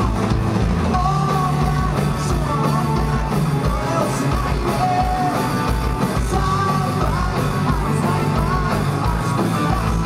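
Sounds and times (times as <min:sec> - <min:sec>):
rock band playing live: 0:00.0 - 0:10.0
person singing: 0:00.9 - 0:10.0.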